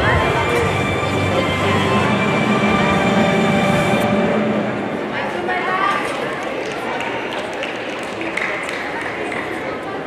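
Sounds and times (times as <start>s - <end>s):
crowd din in sports hall: 0.0s - 10.0s.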